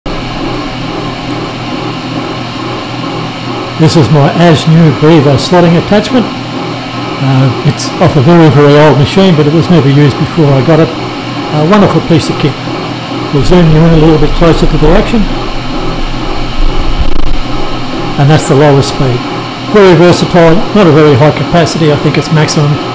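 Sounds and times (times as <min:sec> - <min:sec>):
milling machine humming: 0:00.1 - 0:22.9.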